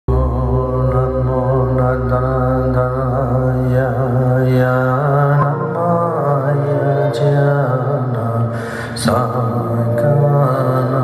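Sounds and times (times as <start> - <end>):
person chanting into microphone: 0.1 - 11.0
steady low drone: 0.1 - 11.0.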